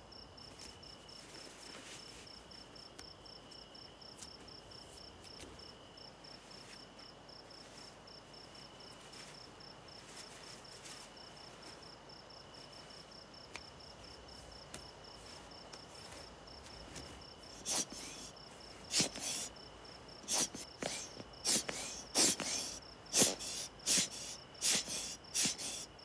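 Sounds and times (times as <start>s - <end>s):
crickets chirping: 0.0s - 26.0s
breathy puffs: 17.0s - 26.0s.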